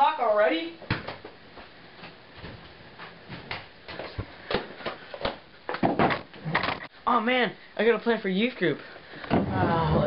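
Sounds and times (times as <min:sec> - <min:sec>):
household objects knocking and clattering: 0:05.7 - 0:06.9.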